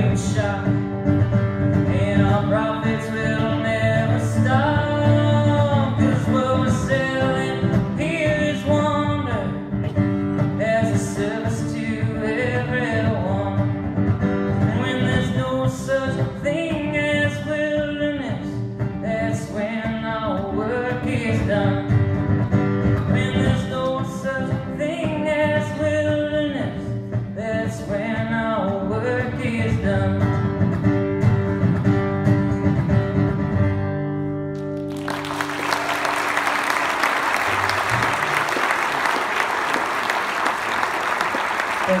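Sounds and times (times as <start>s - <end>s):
man singing: 0.0s - 1.0s, 1.7s - 13.8s, 14.5s - 22.2s, 22.8s - 30.6s
acoustic guitar: 0.0s - 42.0s
audience applause: 34.6s - 42.0s.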